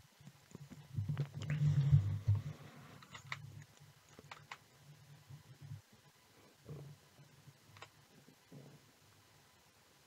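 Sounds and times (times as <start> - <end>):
computer clicks: 3.0 - 4.6.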